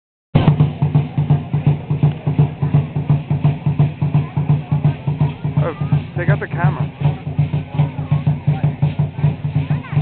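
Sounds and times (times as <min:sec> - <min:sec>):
large drum beating: 0:00.4 - 0:10.0.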